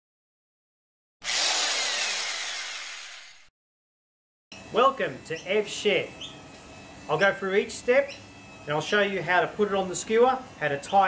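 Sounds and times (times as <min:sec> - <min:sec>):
harsh scraping sawing noise: 0:01.2 - 0:03.5.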